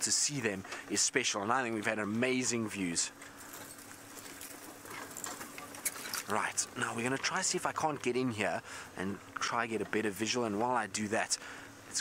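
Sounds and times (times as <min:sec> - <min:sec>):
vehicle engine humming: 0:00.0 - 0:12.0
light rustling: 0:03.2 - 0:08.1.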